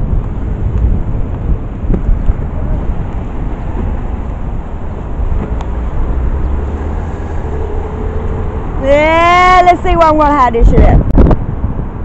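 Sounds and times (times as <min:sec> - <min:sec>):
city traffic rumble: 0:00.0 - 0:12.0
wind on microphone: 0:00.0 - 0:12.0.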